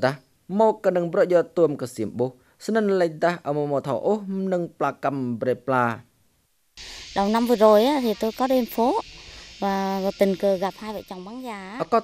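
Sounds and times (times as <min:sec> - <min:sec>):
insects chirring: 0:06.8 - 0:12.0
woman's voice: 0:06.9 - 0:09.0, 0:09.6 - 0:12.0.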